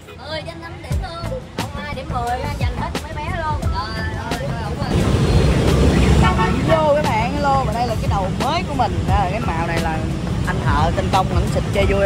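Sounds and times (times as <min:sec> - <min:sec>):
motorbike traffic rumble: 0:00.0 - 0:12.0
vehicle horn beep: 0:05.3 - 0:07.0.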